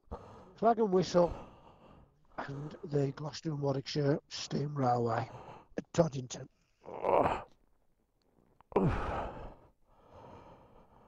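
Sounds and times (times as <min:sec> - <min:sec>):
man sighing: 0:08.7 - 0:09.5.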